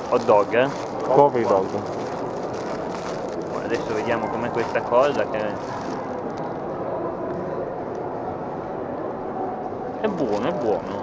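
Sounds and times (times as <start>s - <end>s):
railway station ambient hum: 0.0s - 11.0s.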